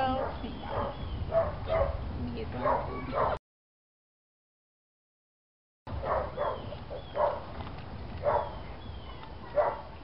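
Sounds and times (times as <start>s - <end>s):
high dog-like yips: 0.2s - 2.0s, 2.6s - 3.4s, 6.0s - 7.4s, 8.2s - 10.0s.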